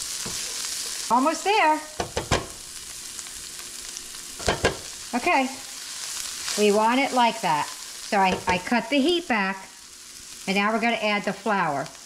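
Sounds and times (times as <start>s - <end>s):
onions sizzling in a frying pan: 0.0s - 12.0s.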